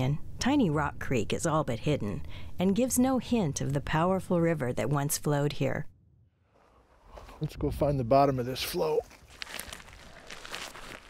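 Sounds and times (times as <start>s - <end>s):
boots crunching on gravel: 9.0s - 11.0s
rock picked up off gravel: 9.1s - 11.0s.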